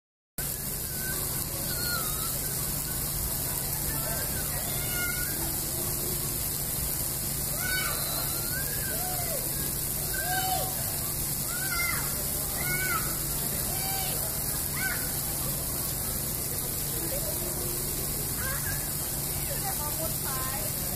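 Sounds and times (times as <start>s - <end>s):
water jets spraying: 0.4s - 20.9s
young children calling: 0.9s - 3.0s, 3.7s - 5.8s, 7.4s - 15.4s, 18.3s - 19.1s.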